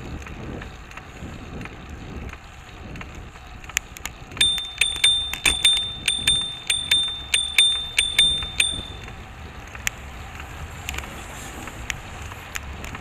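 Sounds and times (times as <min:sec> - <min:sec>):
bicycle bell ringing rapidly: 0:04.4 - 0:09.1.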